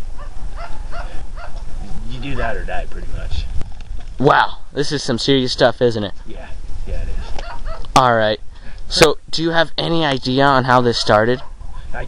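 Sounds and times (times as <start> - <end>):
wind buffeting microphone: 0.0 - 4.2, 6.3 - 8.9.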